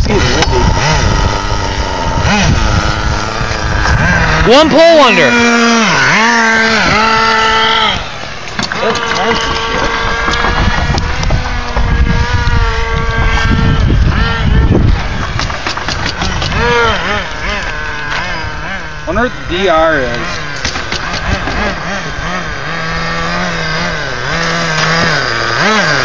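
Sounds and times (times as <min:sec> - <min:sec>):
small nitro engine revving: 0:00.0 - 0:26.0.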